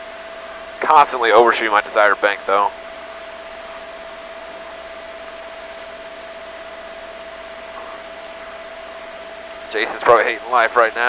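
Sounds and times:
constant mid-pitched tone: 0.0 - 11.0.

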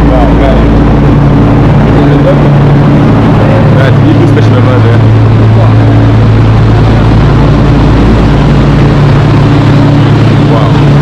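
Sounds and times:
rumbling background: 0.0 - 11.0
train low hum: 0.0 - 11.0.

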